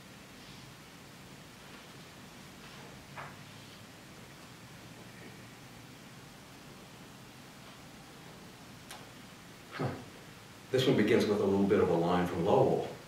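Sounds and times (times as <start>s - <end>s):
faint low hum: 0.0s - 13.0s
man saying huh: 9.7s - 10.1s.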